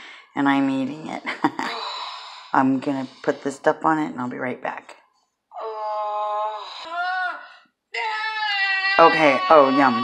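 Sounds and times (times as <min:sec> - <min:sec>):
baby crying from television: 0:05.6 - 0:10.0.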